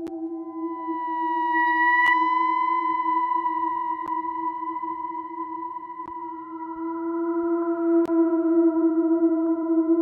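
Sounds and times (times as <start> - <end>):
ambient synthesizer drone: 0.0 - 10.0.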